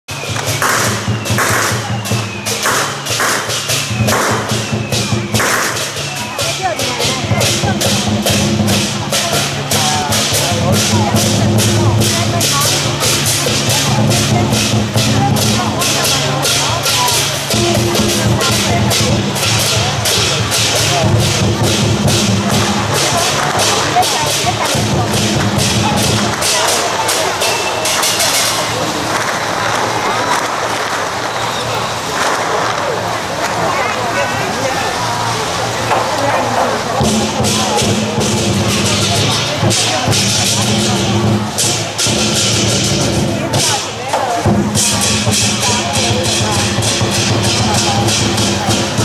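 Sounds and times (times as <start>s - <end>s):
cymbal crashes: 0.1s - 28.9s
drum beating steady rhythm: 0.1s - 49.0s.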